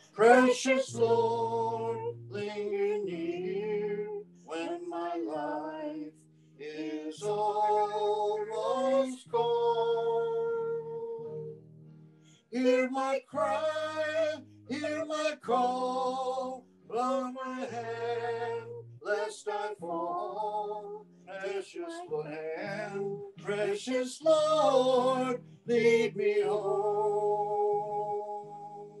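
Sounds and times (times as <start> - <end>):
woman singing with vibrato: 0.2 - 8.0.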